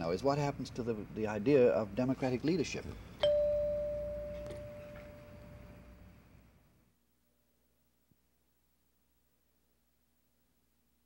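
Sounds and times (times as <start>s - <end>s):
chime ringing: 3.2s - 5.8s.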